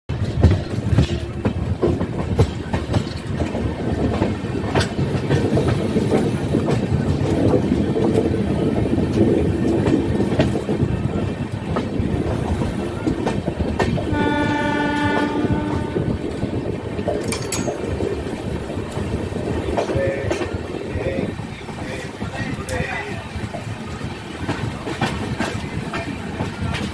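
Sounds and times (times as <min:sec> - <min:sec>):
train wheels rumbling on rails: 0:00.1 - 0:26.9
locomotive horn blast: 0:14.0 - 0:16.6.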